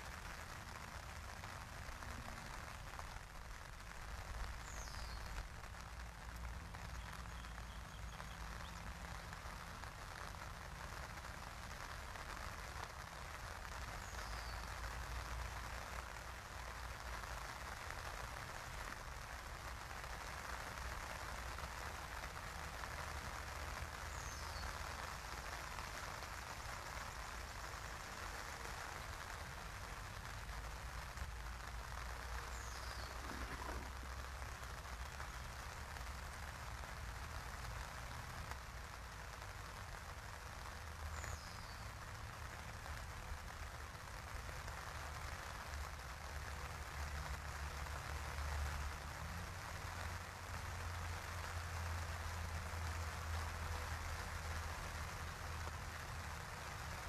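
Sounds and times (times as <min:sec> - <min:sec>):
outdoor hiss with low rumble: 0:00.0 - 0:57.0.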